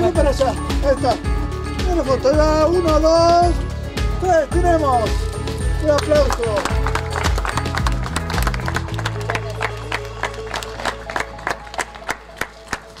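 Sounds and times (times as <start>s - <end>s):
background music: 0.0s - 13.0s
people applauding: 5.9s - 13.0s.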